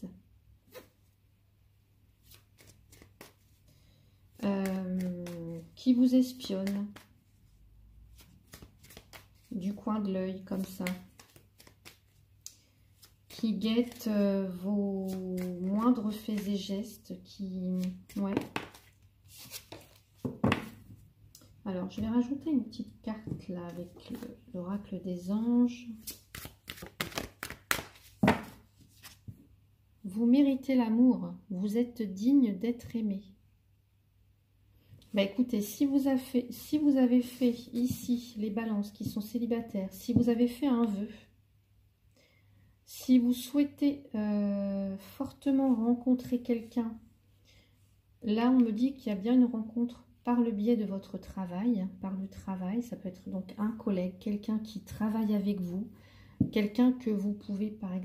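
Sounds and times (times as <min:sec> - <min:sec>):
cards being shuffled: 0:02.2 - 0:03.6, 0:04.3 - 0:07.2, 0:08.1 - 0:09.7, 0:10.4 - 0:16.7, 0:17.7 - 0:20.9, 0:23.7 - 0:24.4, 0:25.9 - 0:29.4.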